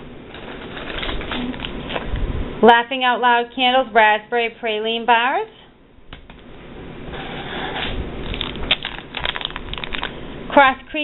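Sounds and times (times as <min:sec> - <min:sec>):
plastic packaging crinkling: 0:08.2 - 0:10.2.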